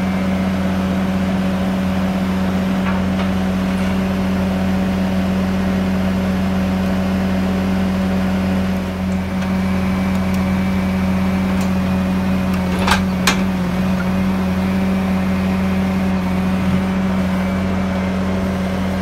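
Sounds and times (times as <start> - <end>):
diesel engine running steadily: 0.0 - 19.0.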